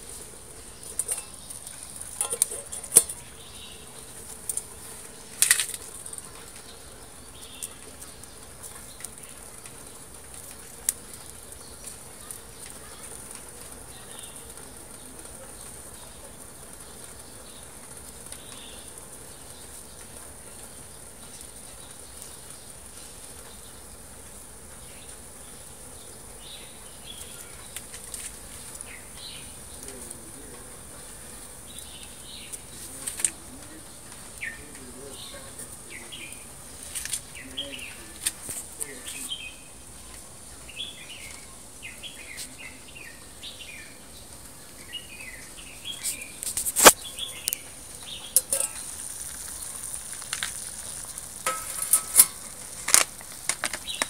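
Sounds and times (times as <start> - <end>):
high-pitched fire hiss: 0.0 - 54.0
wood fire crackling: 0.0 - 54.0.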